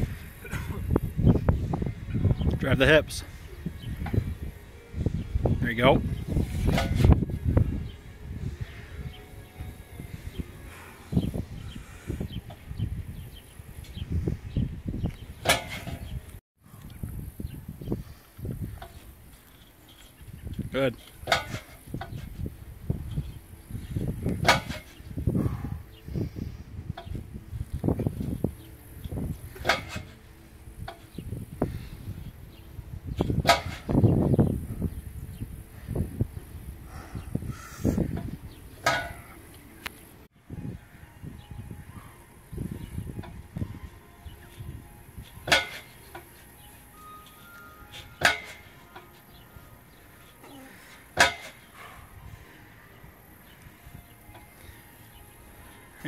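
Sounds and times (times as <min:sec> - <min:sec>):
wind gusts on microphone: 0:00.0 - 0:19.4, 0:20.2 - 0:47.1
metal lifting frame clanking: 0:15.4 - 0:16.2, 0:21.0 - 0:22.3, 0:24.4 - 0:25.0, 0:29.5 - 0:30.2, 0:33.2 - 0:34.0, 0:38.2 - 0:39.5, 0:45.2 - 0:49.4, 0:51.1 - 0:51.8.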